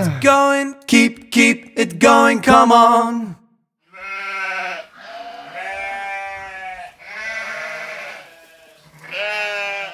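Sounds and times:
sheep bleating: 3.8 - 9.9.

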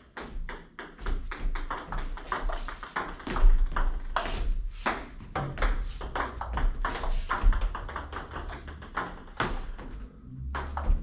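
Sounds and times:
table tennis balls clicking: 5.4 - 9.9.

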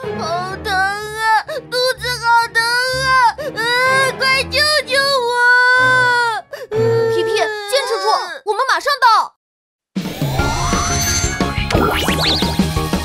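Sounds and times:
cartoon character crying: 5.8 - 8.4.

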